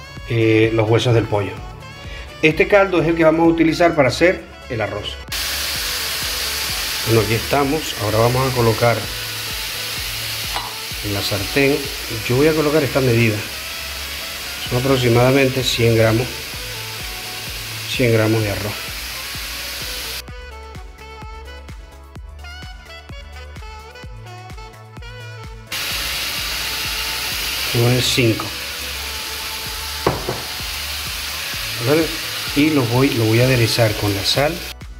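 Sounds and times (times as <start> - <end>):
background music: 0.0 - 34.9
vegetables sizzling in oil: 5.3 - 20.2, 25.7 - 34.7.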